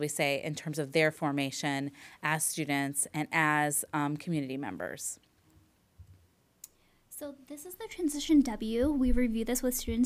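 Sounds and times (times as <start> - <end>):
soft low thump: 8.7 - 10.0.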